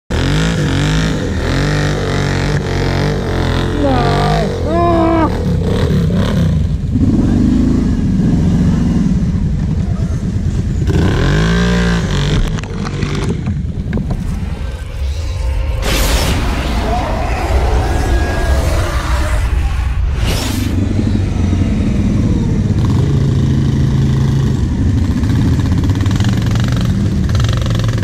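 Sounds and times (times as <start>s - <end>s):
atv engines revving: 0.1s - 15.1s, 16.8s - 28.0s.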